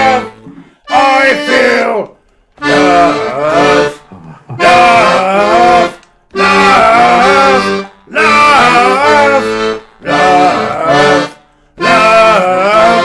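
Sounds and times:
accordion playing chords: 0.0s - 13.0s
man singing: 0.0s - 13.0s.

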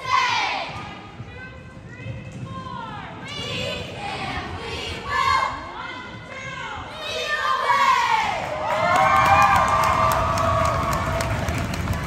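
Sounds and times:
crowd cheering and yelling: 8.3s - 12.0s.

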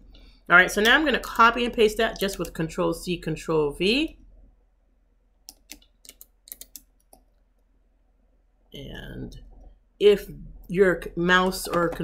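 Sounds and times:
keyboard and mouse clicks: 2.2s - 2.6s, 5.4s - 7.4s.

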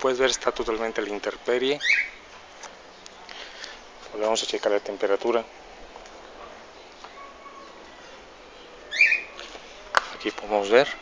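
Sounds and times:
small bird chirping: 1.8s - 2.2s, 6.8s - 9.4s.

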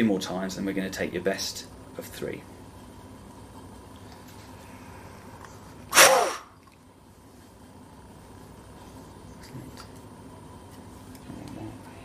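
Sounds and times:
forceful blow into flow meter: 5.9s - 6.6s.

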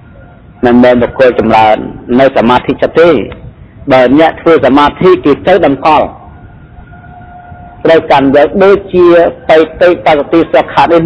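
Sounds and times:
man speaking: 0.6s - 6.3s, 7.8s - 11.0s.

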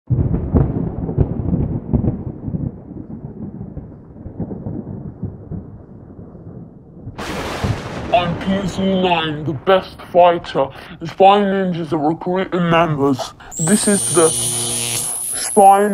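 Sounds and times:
deep thunder-like rumbling: 0.1s - 11.0s
hissing static burst: 13.5s - 15.9s.

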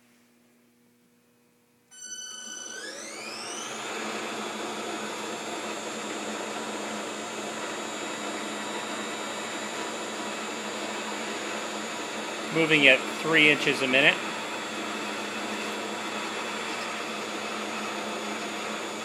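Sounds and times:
drilling machine motors whirring: 2.0s - 19.0s.

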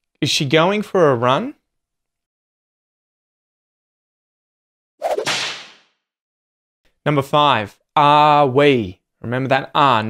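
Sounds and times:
whip-like swoosh effect: 5.0s - 5.9s.

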